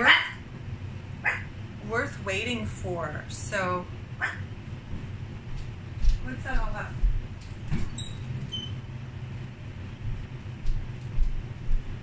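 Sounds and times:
door opening with squeak: 7.7 - 8.8.

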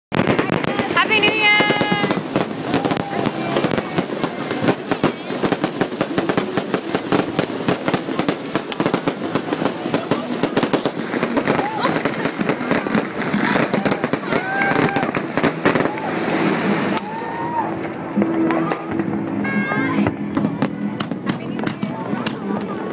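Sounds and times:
fireworks crackling and banging: 0.1 - 22.9
people calling out: 19.4 - 20.1.

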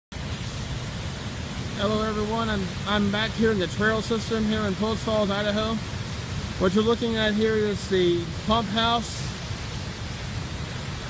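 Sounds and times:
waterfall rushing: 0.1 - 11.0.

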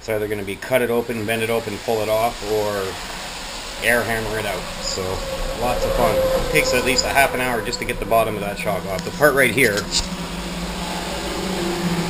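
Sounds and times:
fan motor humming: 0.0 - 12.0
higher steady tone: 1.3 - 12.0.

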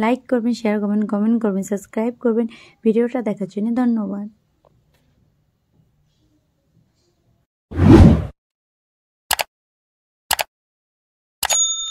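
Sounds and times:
whoosh transition effect: 7.8 - 8.3.

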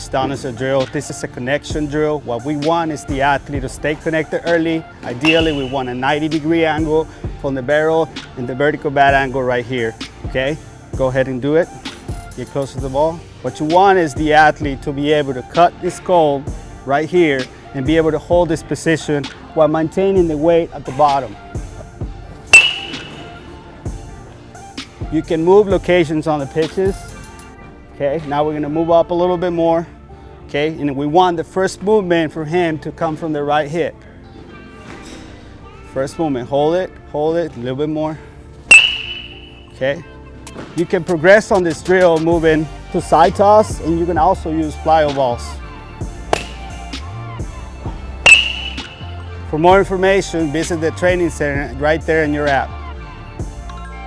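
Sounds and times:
soft background music: 0.0 - 54.0
baseball bat hitting ball: 5.2 - 6.0, 22.5 - 23.5, 38.7 - 39.8, 46.2 - 46.8, 48.2 - 49.2.

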